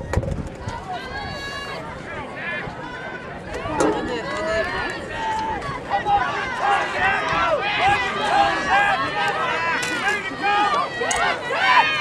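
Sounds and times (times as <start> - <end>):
spectators yelling and cheering: 0.0 - 12.0
long drawn-out shout: 4.2 - 12.0.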